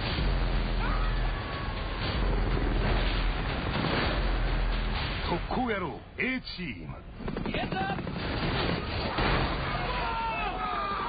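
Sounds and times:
helicopter rotor and engine: 0.4 - 5.0, 6.5 - 9.1.

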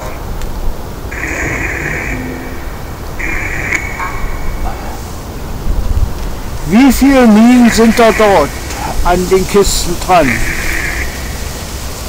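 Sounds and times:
radio hiss bursts: 1.1 - 5.6, 6.4 - 12.0
faint broken radio sound: 6.2 - 12.0.

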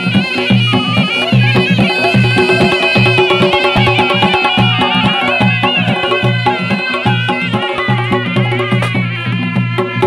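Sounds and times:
drums beating: 0.0 - 10.0
shawms playing folk melody: 0.0 - 10.0.

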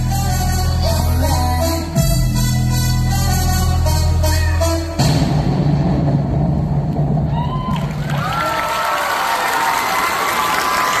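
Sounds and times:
dance music: 0.0 - 7.7
audience cheering and screaming: 7.2 - 11.0
high-pitched shrieks and whoops: 7.3 - 11.0.

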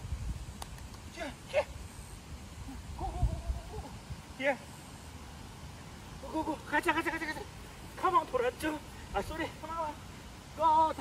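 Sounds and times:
person calling excitedly: 2.7 - 4.0, 6.2 - 10.0.

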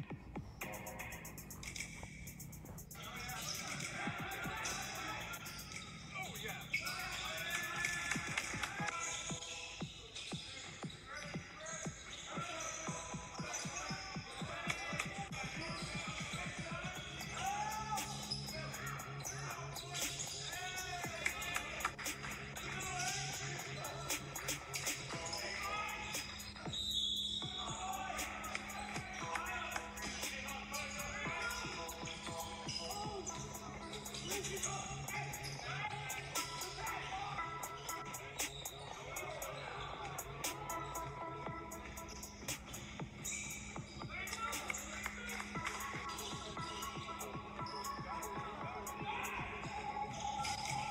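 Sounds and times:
music: 0.0 - 50.9
voices: 0.0 - 50.9.

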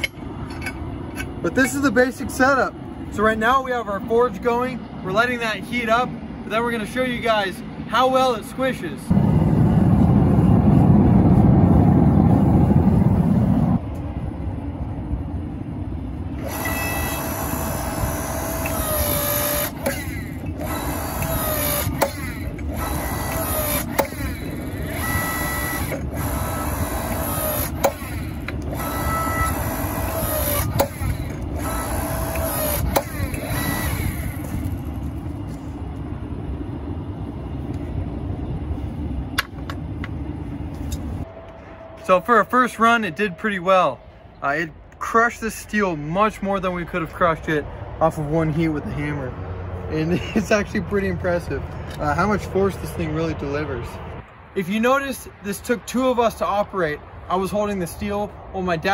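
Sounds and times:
propane forge burner roaring: 0.0 - 46.2
hydraulic pump motor whine: 16.3 - 36.0.

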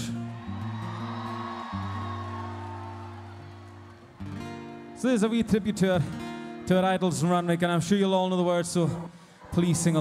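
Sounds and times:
crowd noise: 0.0 - 5.0.

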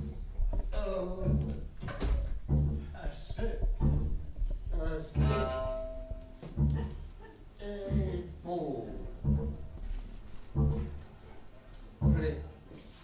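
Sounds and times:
double bass plucking low notes: 0.0 - 12.7
viola and cello playing lines: 0.0 - 13.0
bowed string note held: 5.2 - 6.8.

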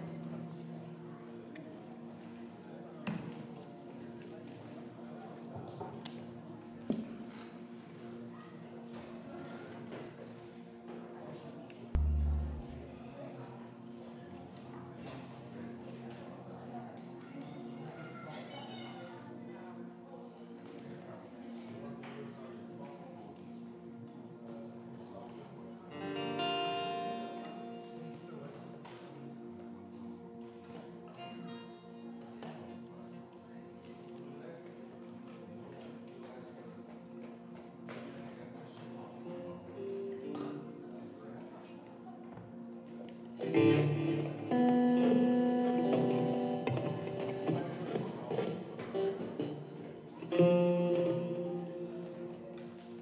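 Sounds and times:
guitar chord ringing: 12.0 - 13.2, 43.4 - 52.4
quiet sustained tone: 12.0 - 13.6.

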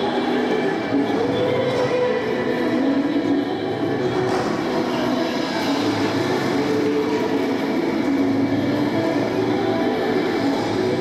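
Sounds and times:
roller-skate wheels on wooden floor: 0.0 - 3.3, 3.9 - 11.0
music over loudspeakers: 0.0 - 11.0.

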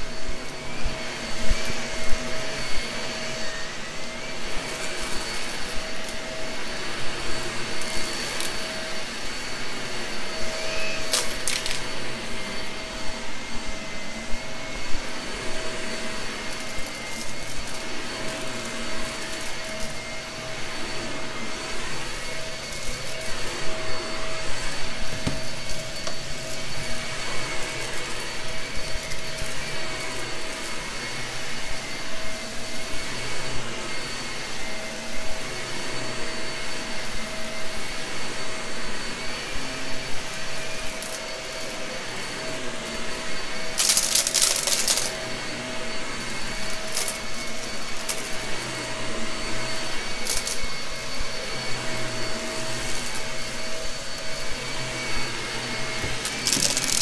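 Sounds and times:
vacuum cleaner whining: 0.0 - 57.0.

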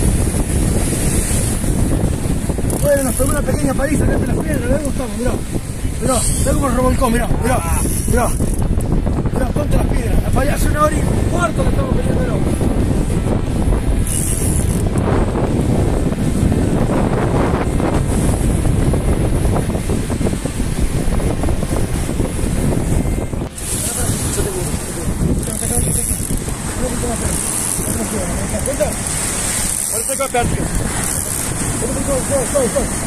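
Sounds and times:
surf: 0.0 - 33.0
wind rumbling on microphone: 0.0 - 33.0.

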